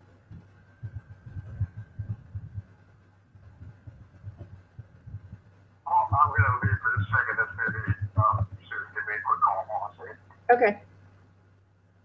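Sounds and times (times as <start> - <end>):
person speaking: 3.5 - 10.8.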